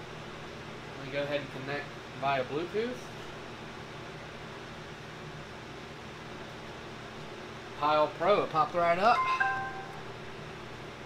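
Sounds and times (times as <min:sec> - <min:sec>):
short electronic chime: 0:09.1 - 0:10.2.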